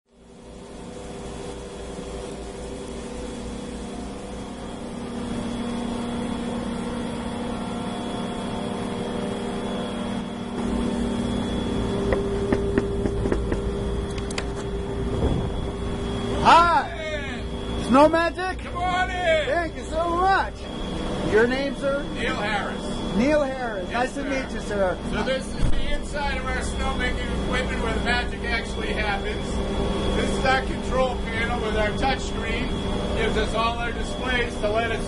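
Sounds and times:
snowmaking machine humming: 0:00.1 - 0:35.0.

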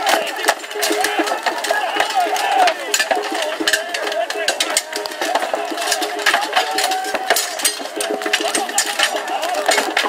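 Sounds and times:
men shouting: 0:00.0 - 0:10.0
wooden poles clashing: 0:00.0 - 0:10.0.

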